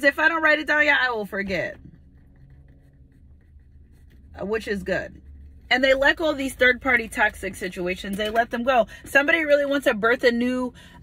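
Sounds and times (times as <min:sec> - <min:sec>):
low steady hum: 0:00.0 - 0:11.0
pen scratching on paper: 0:01.5 - 0:05.1.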